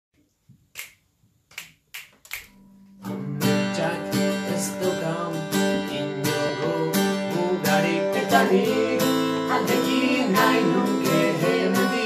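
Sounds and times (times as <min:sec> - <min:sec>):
fingers snapping: 0:00.8 - 0:02.6
acoustic guitar: 0:02.5 - 0:12.0.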